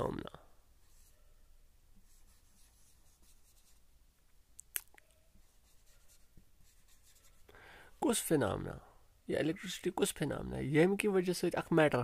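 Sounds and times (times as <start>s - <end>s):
marker scratching on whiteboard: 2.0s - 3.8s, 5.4s - 7.4s.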